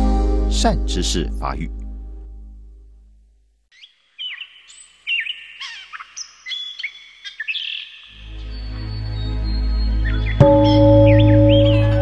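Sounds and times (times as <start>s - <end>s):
low ambient music drone: 0.0s - 3.0s, 8.1s - 12.0s
birds chirping and whistling: 3.8s - 12.0s.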